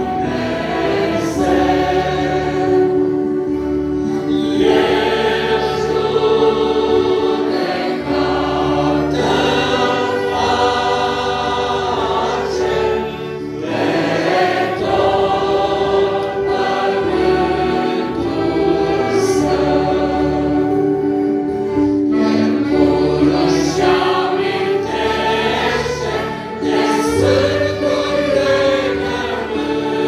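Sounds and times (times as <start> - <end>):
congregation singing a hymn: 0.0 - 30.0.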